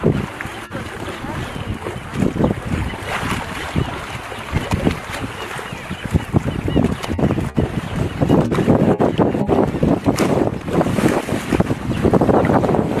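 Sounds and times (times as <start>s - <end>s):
water rushing and splashing: 0.0s - 13.0s
wind buffeting microphone: 0.0s - 13.0s.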